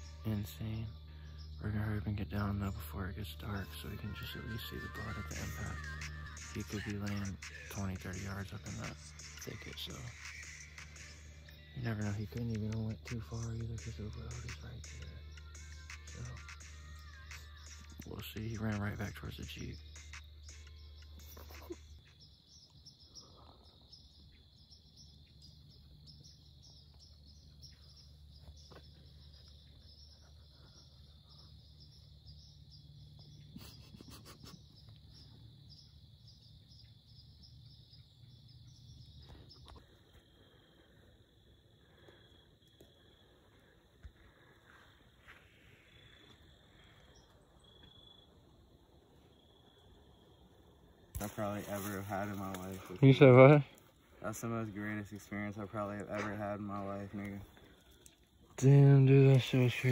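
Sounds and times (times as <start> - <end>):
faint low hum: 0.0 - 5.9
crickets chirping: 0.0 - 59.9.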